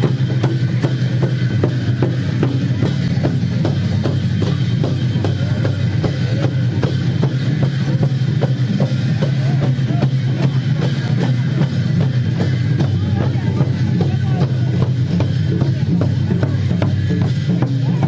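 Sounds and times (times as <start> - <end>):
large drums beaten: 0.0 - 18.0.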